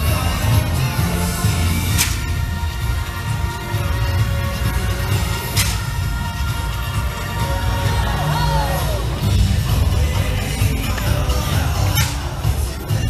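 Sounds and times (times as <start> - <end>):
parade music over loudspeakers: 0.0 - 13.0.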